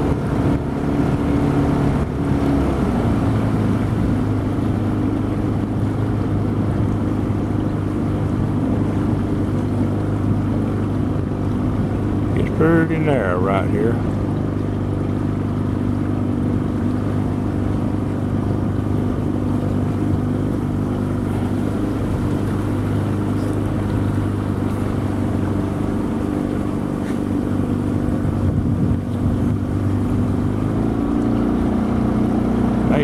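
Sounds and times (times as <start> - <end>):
outboard motor running: 0.0 - 33.0.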